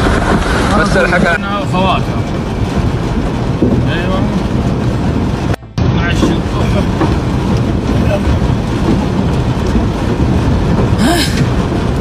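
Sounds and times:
floodwater rushing: 0:00.0 - 0:12.0.

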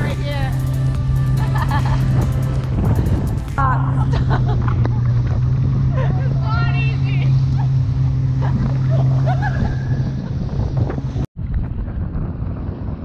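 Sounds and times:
jet ski engine droning: 0:00.0 - 0:11.2
wind on microphone: 0:00.0 - 0:13.0.

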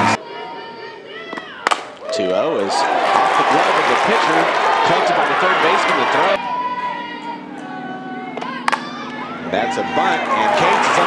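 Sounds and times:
loud crowd noise: 0:00.0 - 0:11.0.

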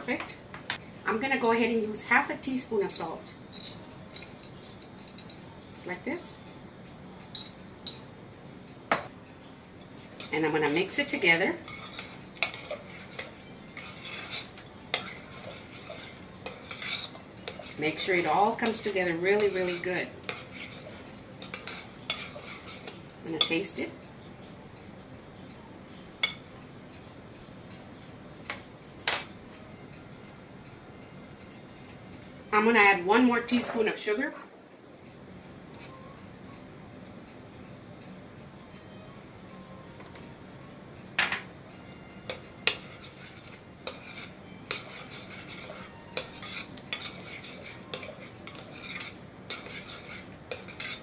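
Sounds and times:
spoon clinking against glass bowl: 0:07.3 - 0:08.0, 0:42.3 - 0:51.0.

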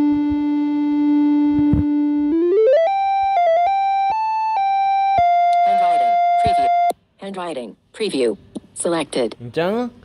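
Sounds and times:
steady low electronic tone: 0:00.0 - 0:06.9.

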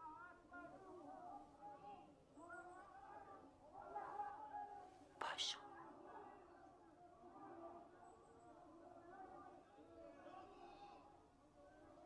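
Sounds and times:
faint low voice murmur: 0:00.0 - 0:12.0
person whispering: 0:05.2 - 0:05.6.

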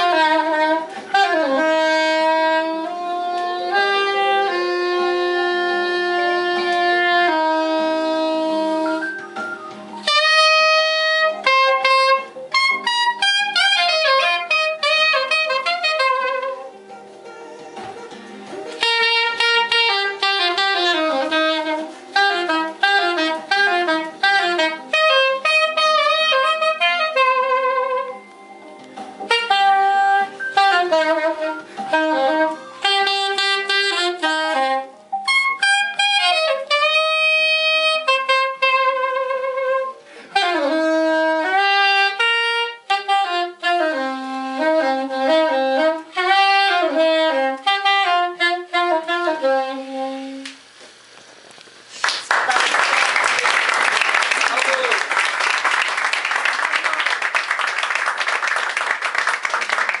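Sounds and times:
soprano saxophone melody: 0:00.0 - 0:50.9
audience applause: 0:52.0 - 1:00.0.

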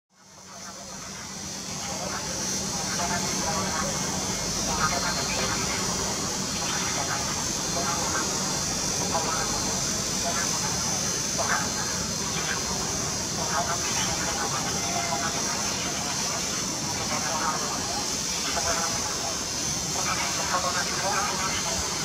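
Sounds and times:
loudspeaker announcement voice: 0:00.2 - 0:22.0
steady high hiss: 0:00.2 - 0:22.0.

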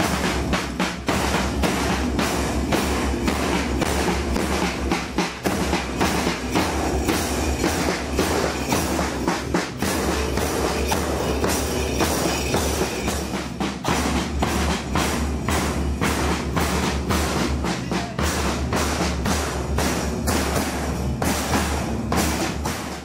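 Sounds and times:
snare drums beating a march: 0:00.0 - 0:23.0.

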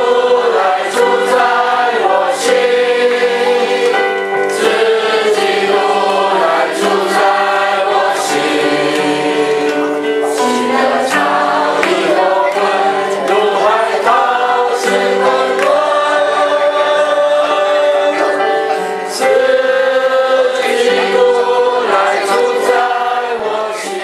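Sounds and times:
congregation singing a hymn: 0:00.0 - 0:24.0.

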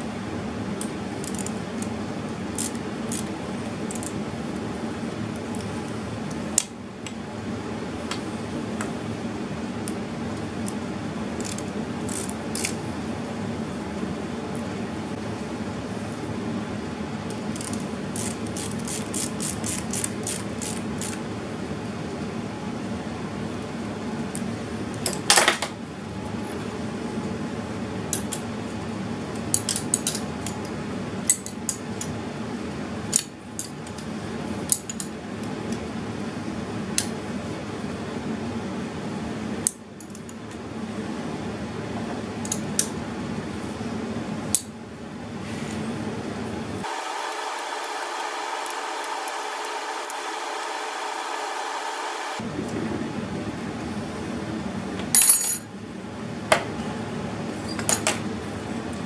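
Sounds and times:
steady background hum: 0:00.0 - 0:59.0.

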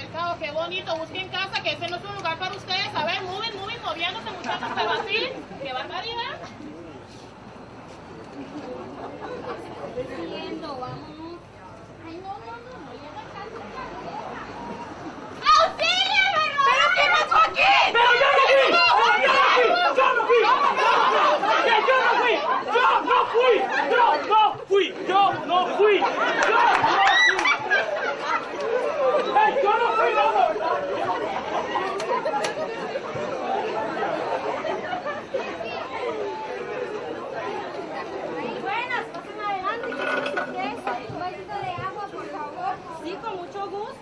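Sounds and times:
crowd excited chatter: 0:00.0 - 0:44.0.

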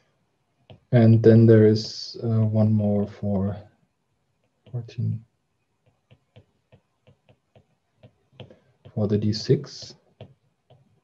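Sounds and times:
stylus tapping on tablet screen: 0:00.6 - 0:01.0, 0:04.2 - 0:11.0.

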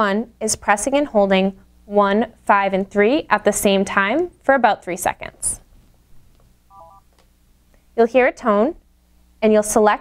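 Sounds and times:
desk phone keypad beeps: 0:06.7 - 0:07.1.

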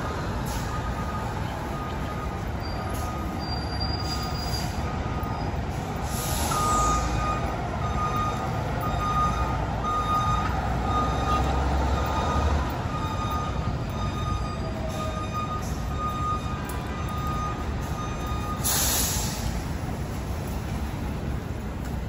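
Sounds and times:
truck backup alarm beeping: 0:00.0 - 0:20.6
diesel engine idling: 0:00.0 - 0:21.8
air hiss: 0:18.6 - 0:19.6.

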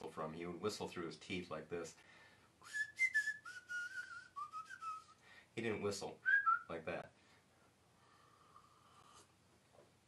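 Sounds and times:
man whistling through teeth: 0:02.6 - 0:05.2, 0:06.2 - 0:06.7.

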